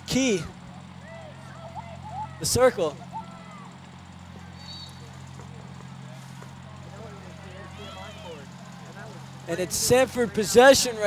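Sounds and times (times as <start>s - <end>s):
distant players calling: 0.0s - 11.0s
steady low hum: 0.0s - 11.0s.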